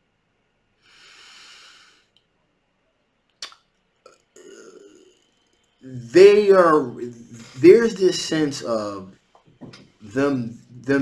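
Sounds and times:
man's quiet throat sound: 0:04.0 - 0:05.3
man speaking: 0:05.8 - 0:09.2, 0:10.0 - 0:11.0.

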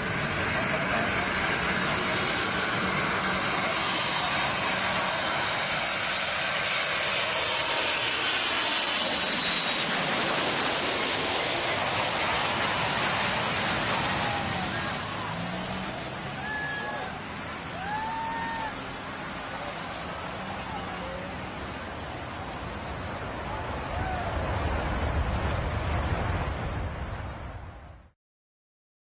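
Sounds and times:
jet airplane passing overhead: 0:00.0 - 0:28.1.

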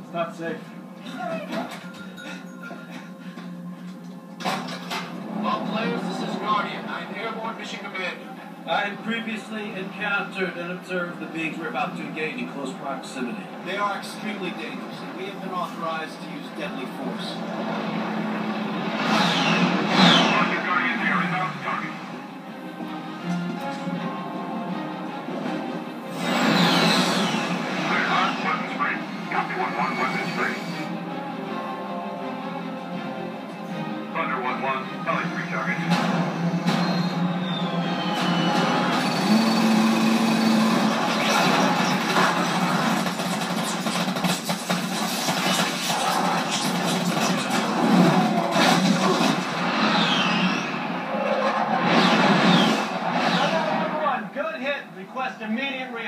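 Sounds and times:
action film music: 0:00.0 - 0:54.6
jet aircraft passing low: 0:24.9 - 0:31.1
crashes and impacts: 0:40.7 - 0:53.9.

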